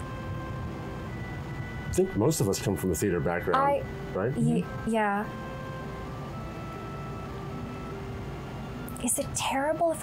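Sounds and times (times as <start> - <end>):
soft sustained background music: 0.0 - 10.0.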